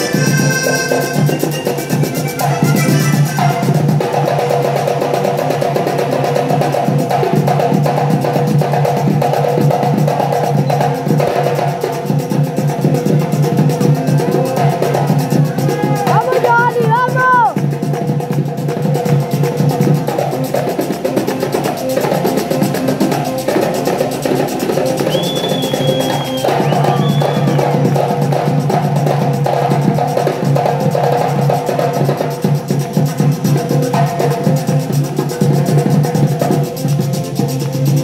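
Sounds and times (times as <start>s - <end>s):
scraped stick instrument: 0.0s - 4.1s
button accordion melody: 0.0s - 4.3s
hand drum: 0.0s - 38.0s.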